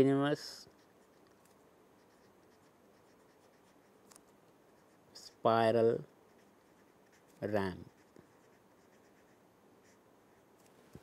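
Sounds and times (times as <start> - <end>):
pen scratching on paper: 2.0 - 4.0, 4.7 - 5.4, 6.3 - 10.5.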